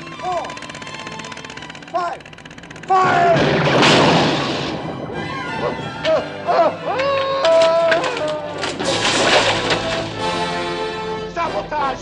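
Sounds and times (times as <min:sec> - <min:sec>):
orchestral film music: 0:00.0 - 0:02.3, 0:02.9 - 0:12.0
blast: 0:03.0 - 0:06.0.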